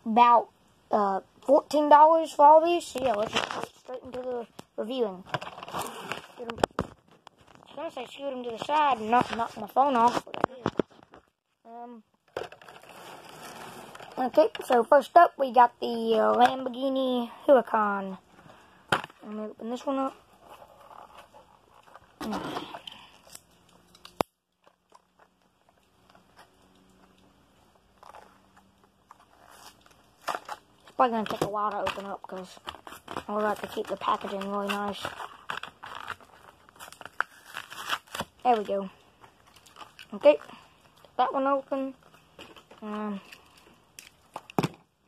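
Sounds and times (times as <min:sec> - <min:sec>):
plastic packaging crackling: 0:02.8 - 0:04.6, 0:05.2 - 0:11.4, 0:12.3 - 0:14.9, 0:27.8 - 0:44.6.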